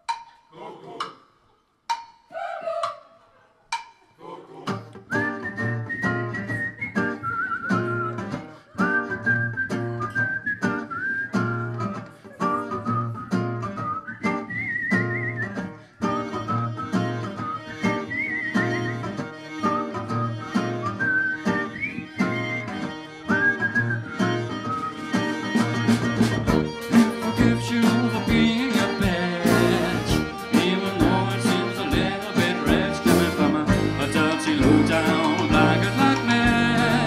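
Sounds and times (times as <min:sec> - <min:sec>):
strummed acoustic guitar: 0:04.7 - 0:37.0
whistled melody: 0:05.0 - 0:37.0
drums: 0:25.3 - 0:37.0.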